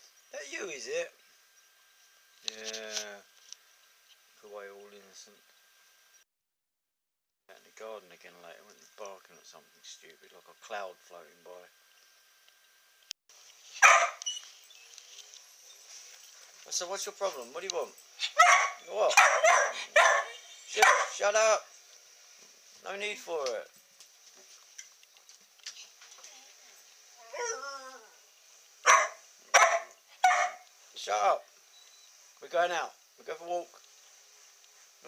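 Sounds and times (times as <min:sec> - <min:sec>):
dog barking: 0:13.8 - 0:14.2, 0:18.2 - 0:21.2, 0:28.8 - 0:30.7.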